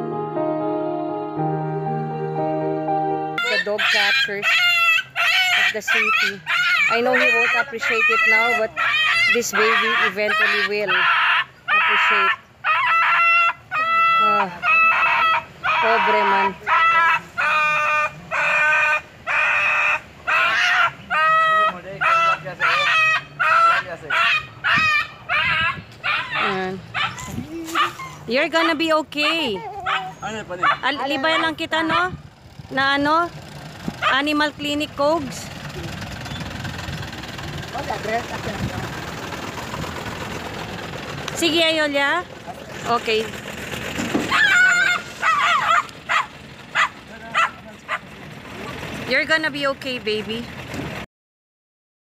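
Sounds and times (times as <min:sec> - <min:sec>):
dog lower rising cry: 0:03.4 - 0:28.3, 0:44.2 - 0:48.0
dog crying high-pitched: 0:03.4 - 0:32.2, 0:44.3 - 0:48.0.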